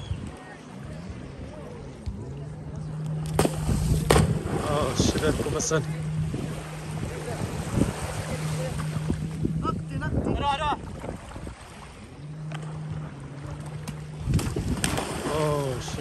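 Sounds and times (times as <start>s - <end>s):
distant jet ski engine drone: 0.0s - 16.0s
water splashing: 0.0s - 16.0s
wind on microphone: 0.0s - 16.0s.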